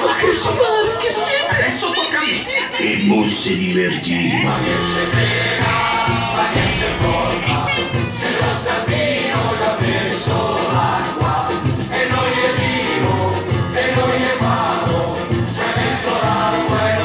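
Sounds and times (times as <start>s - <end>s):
group of voices singing: 2.8s - 17.0s
pulsing bass beat: 4.3s - 8.6s.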